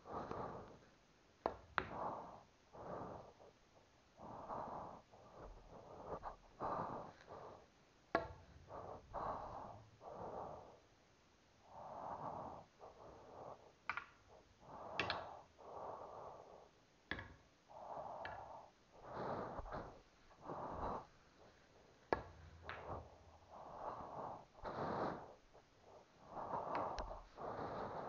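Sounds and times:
person breathing heavily: 0.0 - 0.9, 1.5 - 10.9, 11.6 - 28.0.

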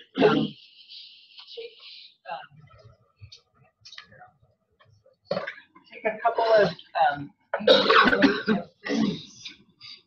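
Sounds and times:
person clearing throat: 0.0 - 0.6, 7.6 - 9.6.

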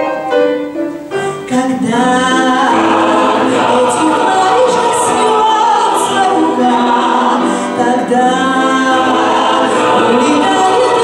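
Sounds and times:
choir singing in harmony: 1.7 - 11.0.

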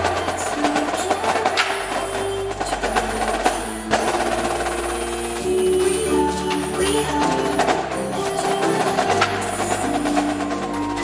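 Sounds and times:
marimba: 0.0 - 11.0.

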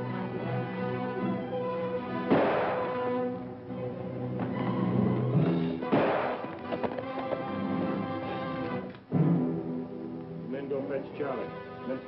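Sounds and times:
dramatic orchestral music: 0.0 - 10.2
horse hoofbeats: 4.4 - 8.6.

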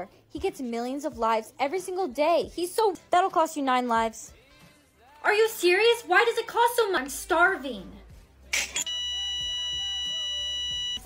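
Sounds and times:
faint background music: 0.0 - 11.0
steady electronic beep tone: 8.8 - 11.0.

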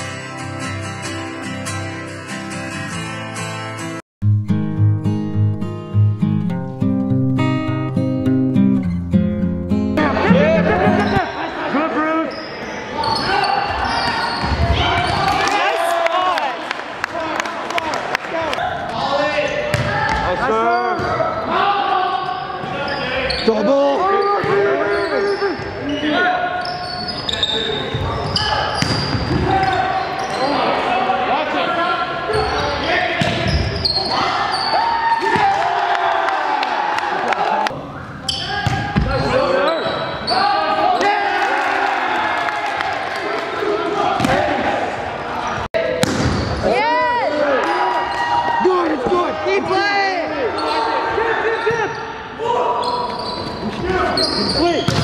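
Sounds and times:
players shouting: 10.0 - 55.0
sneakers squeaking on gym floor: 11.0 - 11.6, 12.3 - 15.2, 22.2 - 30.6, 32.3 - 35.3, 38.0 - 40.6, 50.4 - 52.2, 52.8 - 55.0
volleyball being hit: 46.0 - 46.6.

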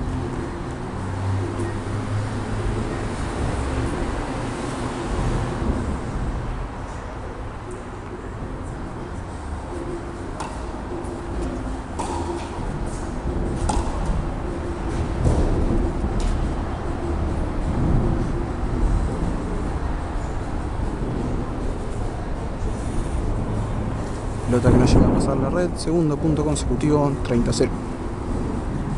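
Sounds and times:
low rumble of hall: 0.0 - 28.9
tennis ball hit by rackets: 10.4 - 10.7, 12.0 - 13.0, 13.6 - 14.2.

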